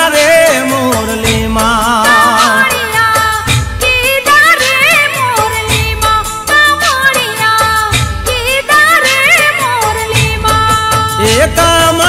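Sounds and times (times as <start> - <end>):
woman singing: 0.0 - 12.0.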